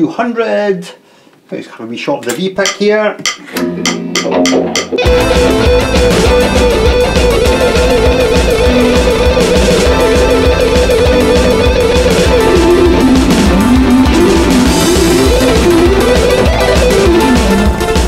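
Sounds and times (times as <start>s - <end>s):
metronome clicks: 2.3s - 5.2s
backing track with drums: 2.6s - 18.0s
electric guitar fast picking: 3.6s - 18.0s.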